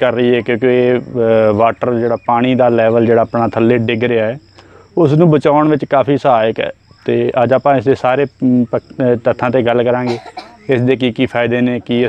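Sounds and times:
crickets trilling: 0:00.0 - 0:12.0
man talking: 0:00.0 - 0:12.0.

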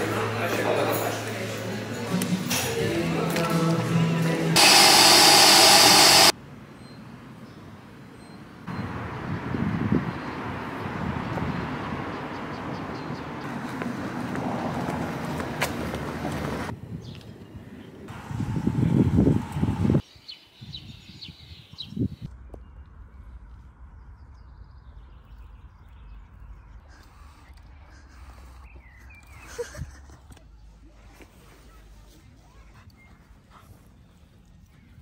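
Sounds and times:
wind rumble on microphone: 0:08.7 - 0:12.3, 0:16.7 - 0:20.0, 0:20.6 - 0:26.2
dog panting: 0:32.2 - 0:35.0.

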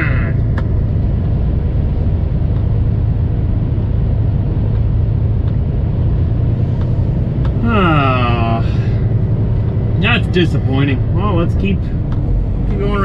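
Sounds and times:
truck engine low drone: 0:00.0 - 0:13.0.

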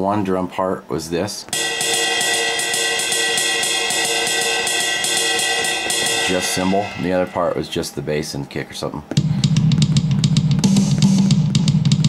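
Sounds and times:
cymbal ringing wash: 0:01.6 - 0:08.0.

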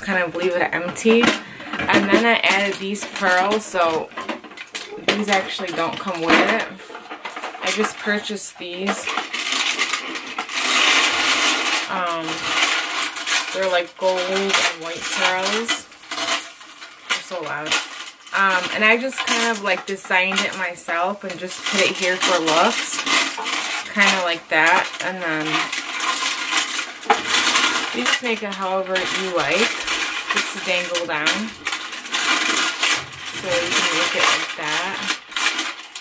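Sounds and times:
bead necklaces clattering: 0:01.1 - 0:36.0.

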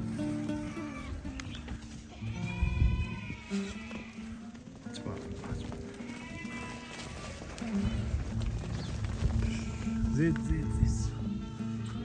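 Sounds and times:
sheep bleating: 0:00.0 - 0:01.5, 0:02.1 - 0:08.1, 0:09.5 - 0:12.0.

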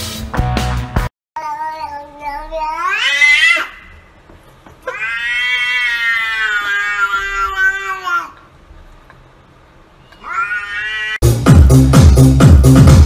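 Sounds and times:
cat meowing: 0:04.8 - 0:08.4, 0:10.0 - 0:11.2.

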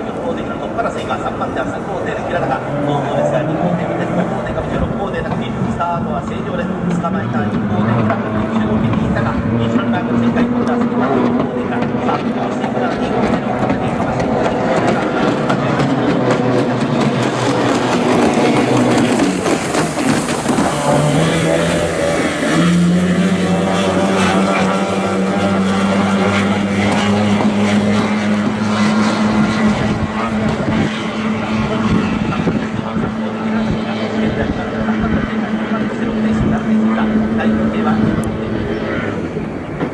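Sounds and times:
boat engine passing close: 0:00.0 - 0:39.9
racing boat engines droning: 0:00.0 - 0:39.9.

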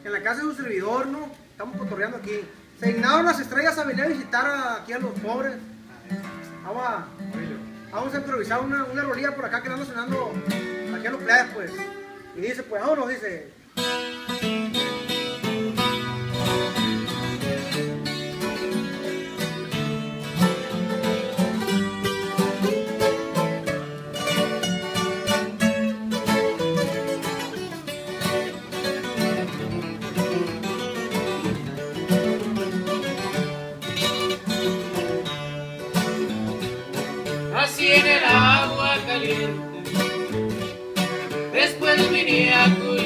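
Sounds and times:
acoustic guitars strumming: 0:00.7 - 0:12.9, 0:13.5 - 0:43.0
guitar picking fast lead line: 0:13.8 - 0:43.0
person calling out: 0:37.5 - 0:40.2, 0:41.6 - 0:43.0.

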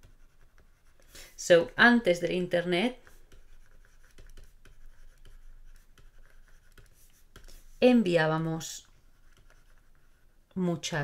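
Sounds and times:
stylus scratching on tablet: 0:00.0 - 0:11.0.

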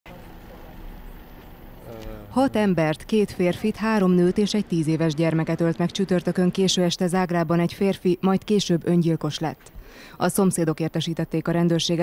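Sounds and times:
vehicle engine running: 0:00.1 - 0:07.9.

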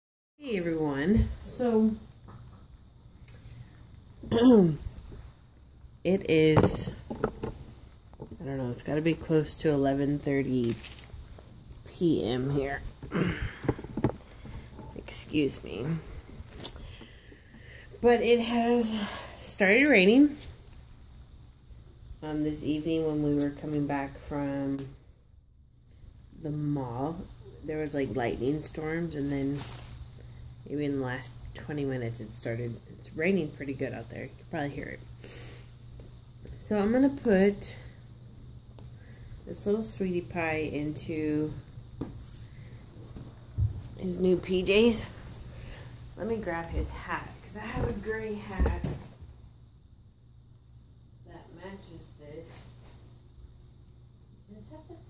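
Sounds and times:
steady low hum: 0:00.4 - 0:55.0
soft handling noise: 0:29.2 - 0:30.2.

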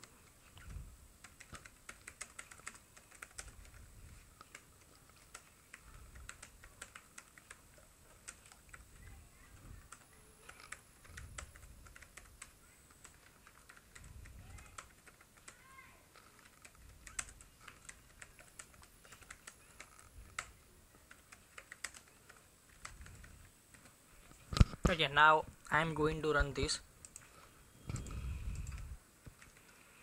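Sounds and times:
typing on computer keyboard: 0:00.0 - 0:24.0, 0:27.0 - 0:30.0.

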